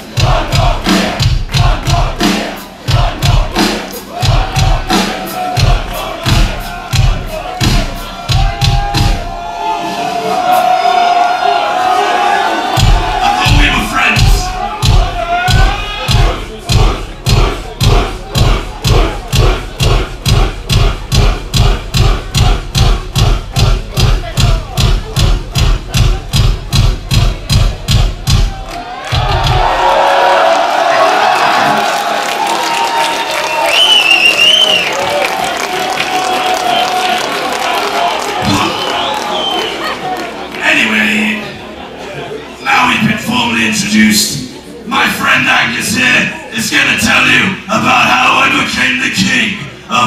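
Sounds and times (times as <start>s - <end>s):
crowd cheering and shouting: 0.0s - 50.0s
kick drum pounding a beat: 0.1s - 9.4s, 12.7s - 30.1s.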